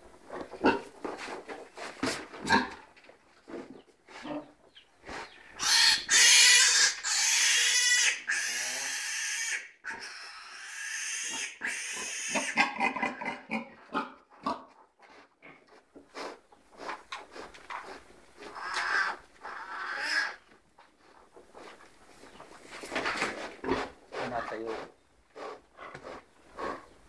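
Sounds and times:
animal squealing harshly: 0:05.6 - 0:12.6, 0:18.6 - 0:20.4.

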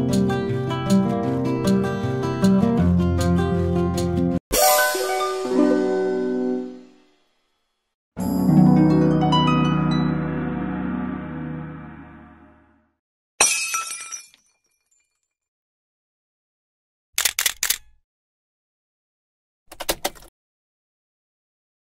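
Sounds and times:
background music: 0:00.0 - 0:07.0, 0:08.2 - 0:12.9
sharp clicks: 0:17.2 - 0:18.0.

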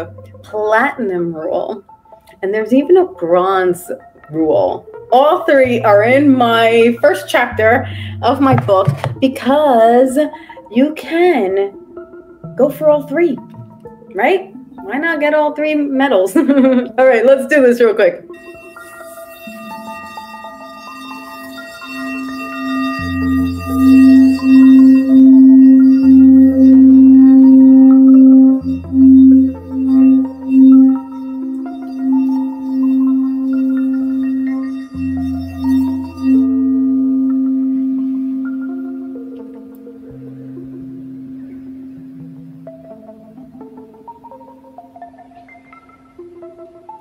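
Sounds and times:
singing bowl ringing hum: 0:00.0 - 0:02.0, 0:02.6 - 0:15.9, 0:17.2 - 0:46.2.

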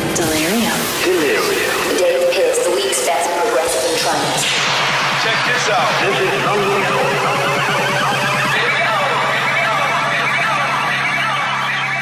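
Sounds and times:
low synth drone: 0:00.0 - 0:12.0
warbling siren-like synth lines: 0:00.1 - 0:12.0.

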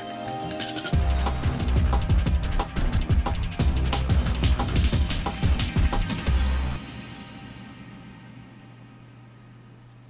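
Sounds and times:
low hum with soft hiss: 0:01.3 - 0:10.0.

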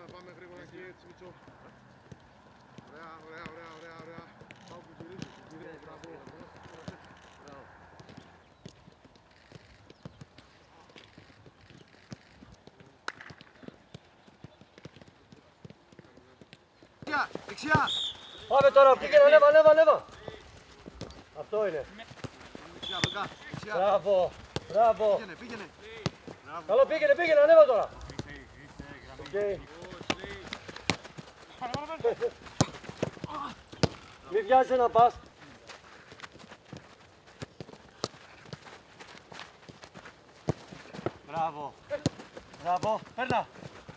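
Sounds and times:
footballs being kicked: 0:07.9 - 0:43.9
shouted calls: 0:17.5 - 0:20.2
boot kicking football: 0:22.1 - 0:26.8, 0:27.8 - 0:34.4.

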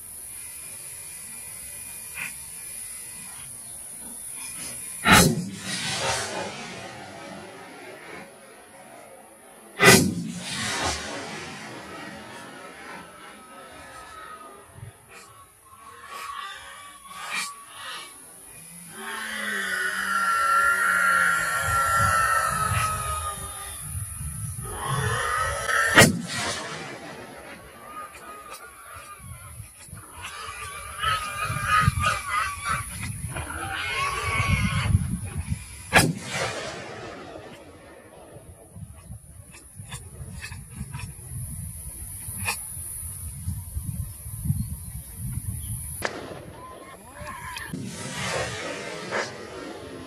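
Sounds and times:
long drawn-out calls: 0:00.0 - 0:05.3, 0:11.8 - 0:26.3, 0:27.1 - 0:35.9
gunshots: 0:04.6 - 0:08.6, 0:09.8 - 0:14.0, 0:25.9 - 0:28.3, 0:35.9 - 0:38.5, 0:46.0 - 0:50.0.

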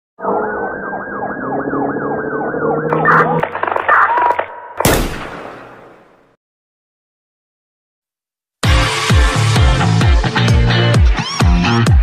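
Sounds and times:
steady lower tones: 0:00.2 - 0:03.4
siren wailing: 0:00.2 - 0:04.8.

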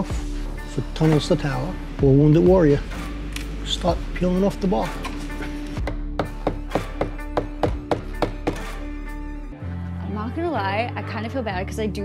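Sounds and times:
mallet striking chisel on wood: 0:05.8 - 0:08.8.

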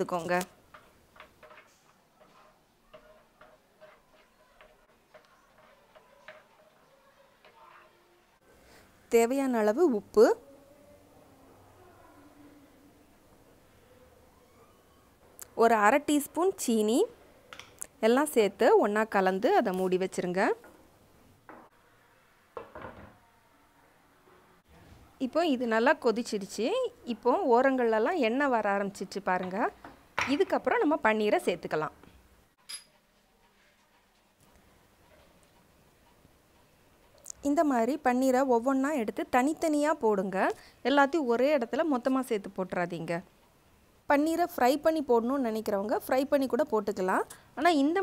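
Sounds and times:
wooden spatula tapping a pan: 0:00.7 - 0:07.6.

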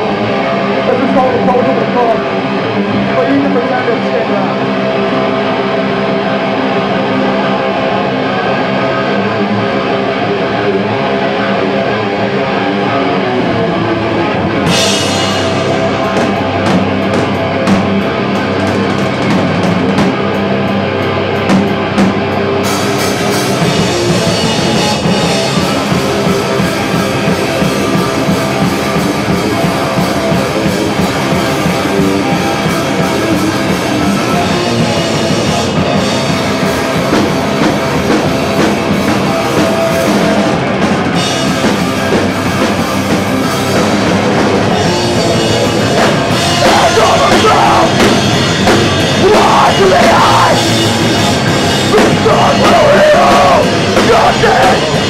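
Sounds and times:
electric guitars ringing: 0:00.0 - 0:55.0
punk band playing loud: 0:00.0 - 0:55.0
drums with cymbal strokes: 0:14.6 - 0:20.2, 0:21.4 - 0:55.0.

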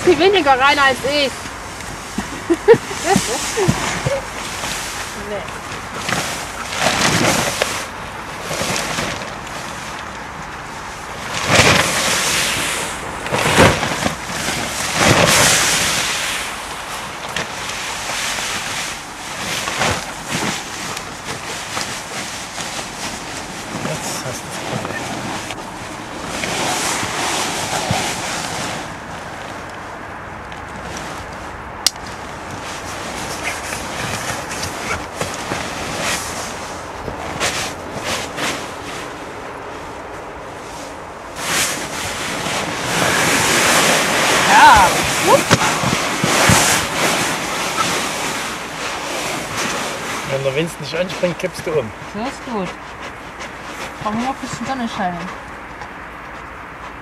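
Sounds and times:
nylon fabric whooshing and rustling: 0:00.0 - 0:29.7, 0:30.6 - 0:55.4.

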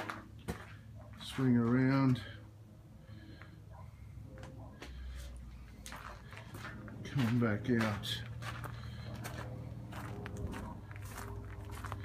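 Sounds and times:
footsteps on dirt: 0:00.0 - 0:02.4, 0:04.3 - 0:12.0.

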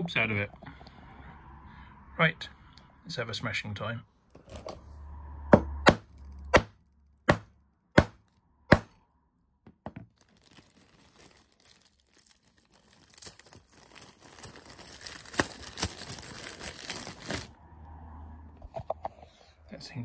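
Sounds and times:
plastic bag crinkling: 0:10.1 - 0:17.6.

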